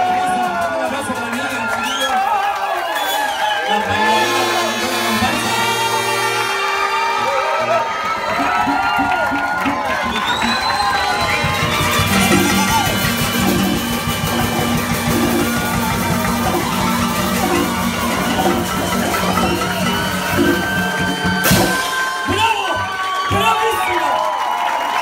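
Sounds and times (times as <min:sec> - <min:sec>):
street band drums and cymbals: 0:00.0 - 0:02.2, 0:02.9 - 0:07.2, 0:08.1 - 0:23.5
crowd shouting and whooping: 0:00.0 - 0:25.0
loud crash: 0:11.2 - 0:22.4
held low note: 0:12.0 - 0:21.8.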